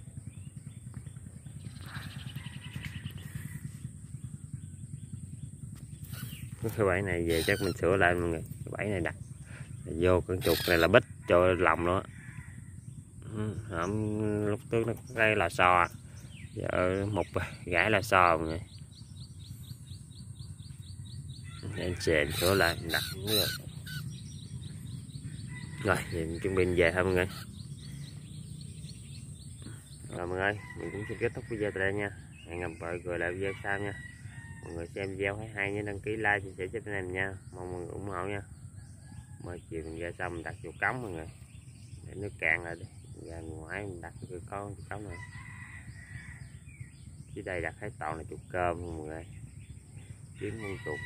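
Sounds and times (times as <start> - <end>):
low rumble: 0.0 - 9.9
rapid high chirps: 1.5 - 11.0, 15.8 - 30.2
rooster crowing: 1.9 - 3.9, 7.3 - 7.8, 10.4 - 12.8, 21.4 - 24.0, 25.2 - 27.4, 30.2 - 32.4, 33.3 - 34.9, 45.1 - 46.6, 50.4 - 51.0.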